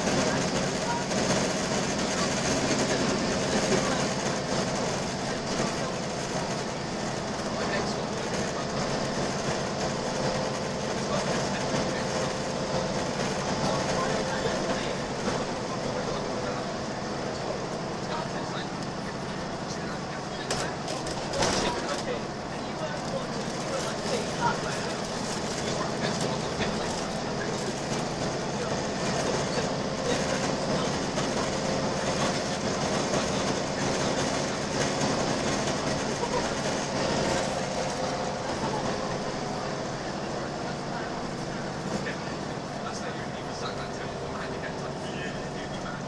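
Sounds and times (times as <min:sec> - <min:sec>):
bus engine drone: 0:00.0 - 0:46.0
road noise: 0:00.0 - 0:46.0.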